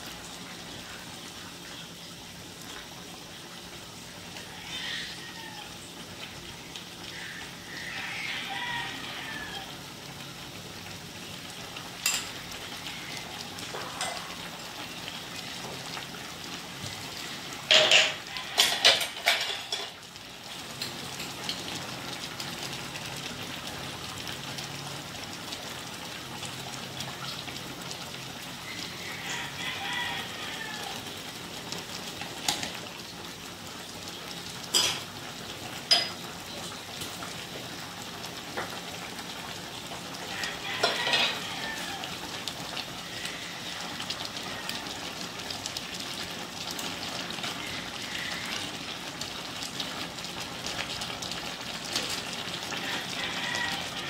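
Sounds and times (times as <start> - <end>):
meat sizzling in a wok: 0.0 - 54.0.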